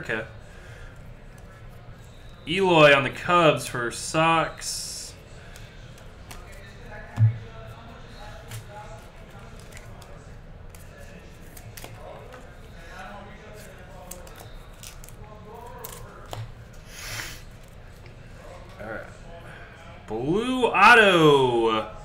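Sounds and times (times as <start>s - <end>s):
cards clicking and rustling: 5.5s - 6.7s, 8.4s - 12.4s, 13.5s - 16.5s
thump: 7.2s - 7.4s.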